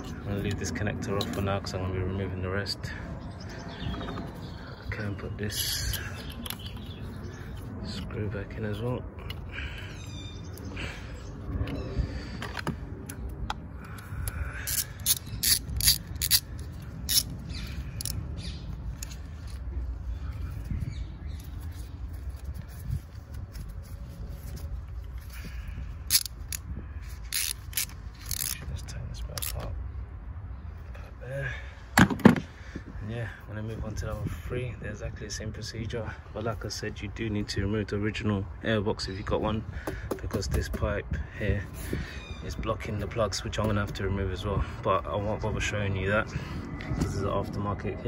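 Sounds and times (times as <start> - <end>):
ratchet wrench clicking: 14.2 - 17.3, 26.1 - 26.6, 27.2 - 28.6.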